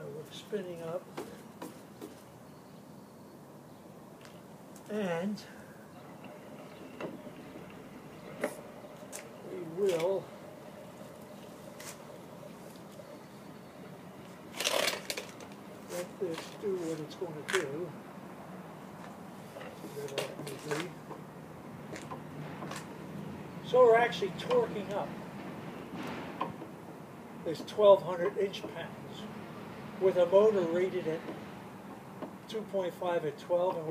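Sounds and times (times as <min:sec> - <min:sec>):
faint background noise: 0:00.0 - 0:33.9.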